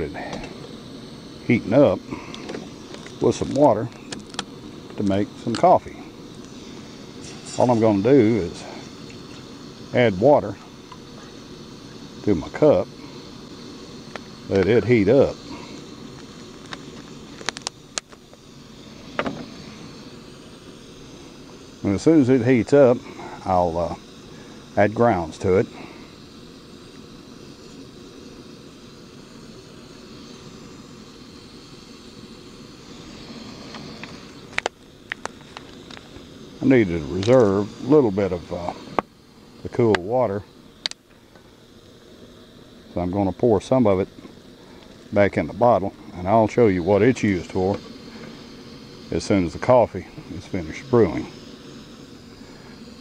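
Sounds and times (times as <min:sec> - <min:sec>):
gas stove burning: 0:00.0 - 0:53.0.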